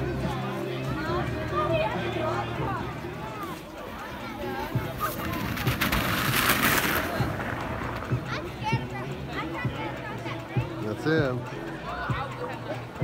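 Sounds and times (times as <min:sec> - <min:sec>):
loud crackling rushing noise: 0:04.6 - 0:08.9.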